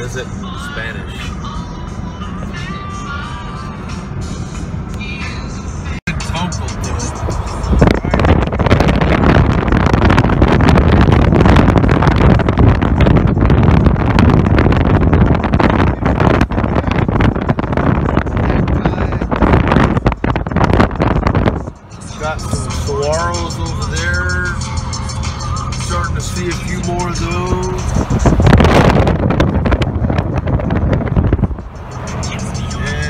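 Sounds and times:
car interior road noise: 0:00.0 - 0:33.0
wind rushing through open car window: 0:05.9 - 0:24.7, 0:25.8 - 0:33.0.

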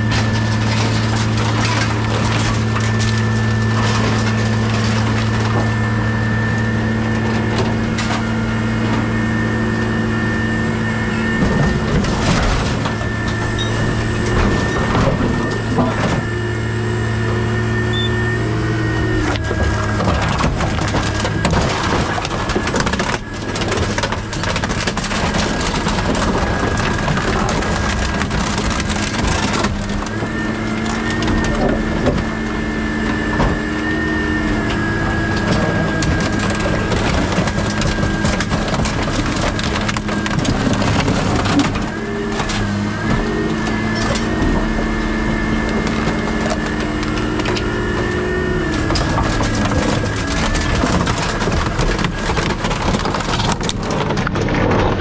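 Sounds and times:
machine engine and hydraulics hum: 0:00.0 - 0:55.0
sheet metal crunching: 0:00.0 - 0:55.0.

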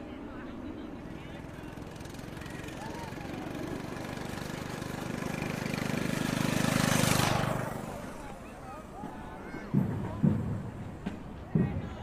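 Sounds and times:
vehicle driving past: 0:01.0 - 0:09.1.

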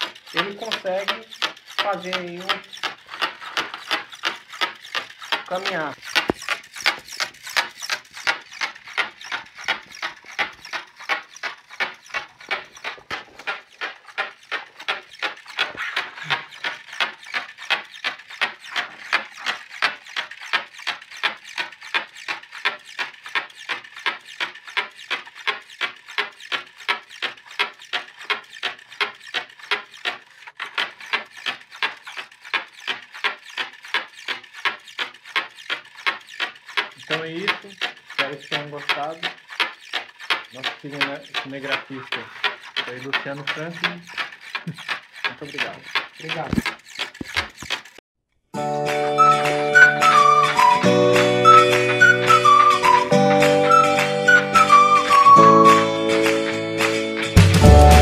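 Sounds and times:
servo motors clicking rhythmically: 0:00.0 - 0:48.0, 0:49.0 - 0:58.0.

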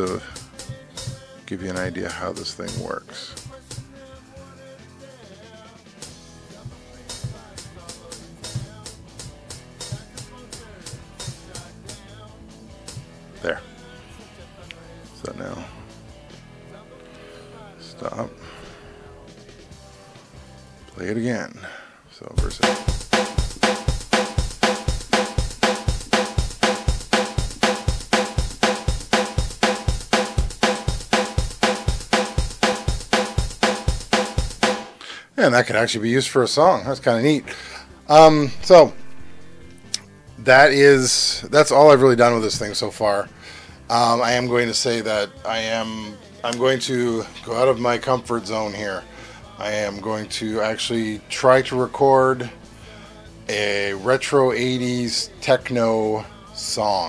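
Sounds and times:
drum machine kick drum: 0:00.0 - 0:04.2, 0:06.0 - 0:12.1, 0:12.9 - 0:13.2, 0:22.4 - 0:35.0, 0:38.1 - 0:43.0
drum machine snare: 0:00.0 - 0:04.3, 0:05.8 - 0:12.1, 0:12.8 - 0:13.2, 0:22.4 - 0:35.1, 0:38.1 - 0:43.1
hi-hats ticking: 0:00.0 - 0:04.3, 0:22.4 - 0:35.0.

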